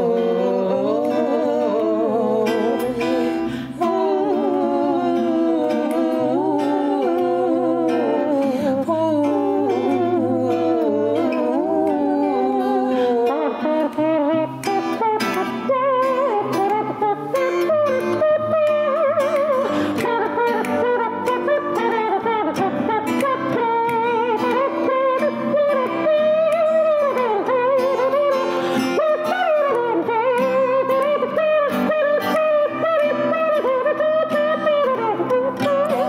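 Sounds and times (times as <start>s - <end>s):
strummed acoustic guitar: 0.0s - 36.0s
woman singing wordlessly: 0.0s - 36.0s.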